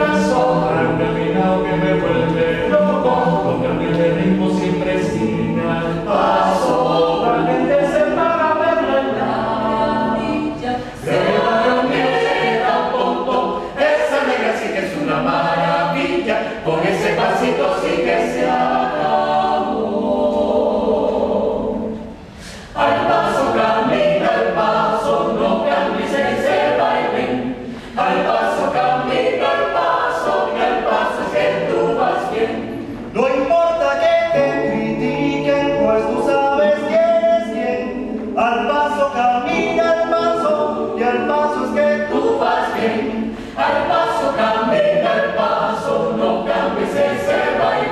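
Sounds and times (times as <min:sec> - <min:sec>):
a cappella ensemble singing: 0:00.0 - 0:47.9.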